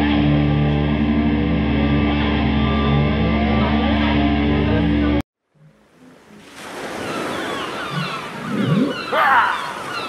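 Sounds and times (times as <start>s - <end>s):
ocean surf: 6.0s - 10.0s.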